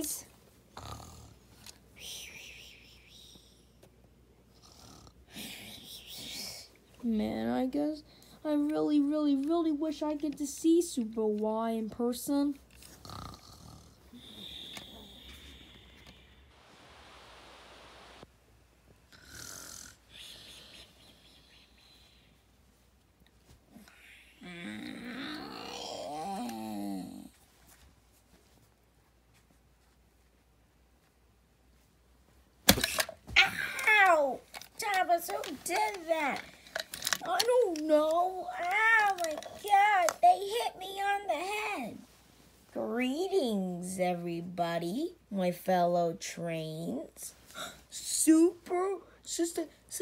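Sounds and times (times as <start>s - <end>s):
person mock snoring: 0.8s - 1.4s, 4.6s - 5.6s, 13.0s - 16.5s, 19.1s - 21.8s.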